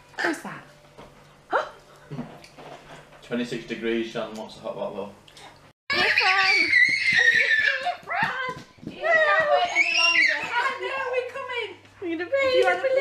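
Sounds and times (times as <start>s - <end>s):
excited woman and toddler voices: 5.9s - 11.6s.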